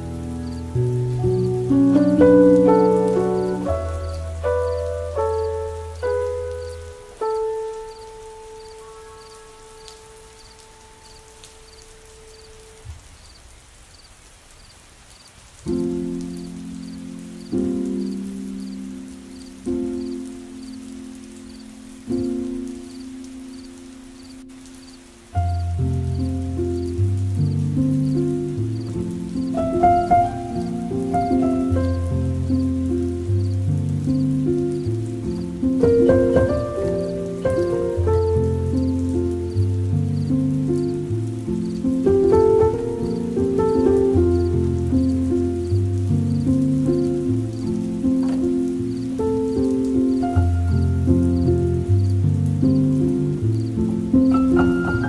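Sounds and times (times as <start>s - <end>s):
soft piano music: 0.0s - 13.4s, 15.4s - 55.0s
soft steady hiss: 0.0s - 55.0s.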